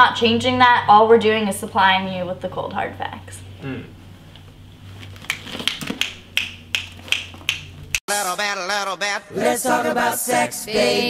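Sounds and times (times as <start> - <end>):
fingers snapping: 5.2 - 8.0.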